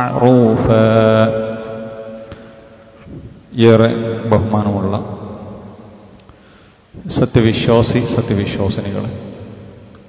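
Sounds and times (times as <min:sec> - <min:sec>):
man chanting recitation: 0:00.0 - 0:01.7.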